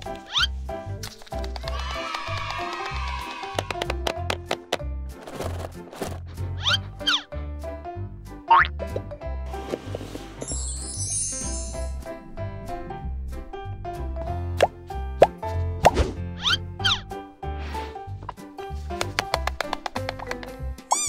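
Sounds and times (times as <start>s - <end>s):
playful background music: 0.0s - 21.0s
high shimmering sparkle: 10.4s - 12.2s.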